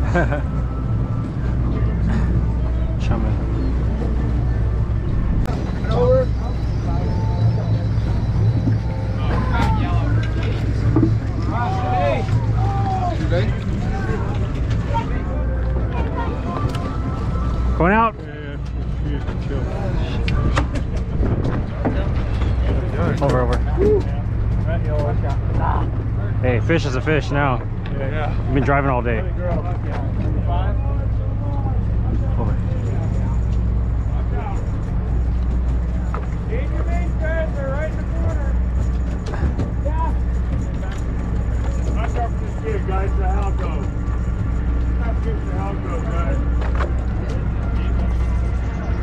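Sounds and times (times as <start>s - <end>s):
boat engine humming: 0.0s - 49.0s
indistinct voices: 0.0s - 49.0s.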